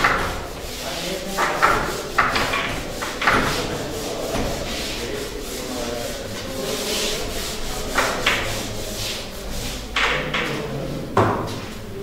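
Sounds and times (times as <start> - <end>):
eraser scrubbing whiteboard: 0.0 - 11.7.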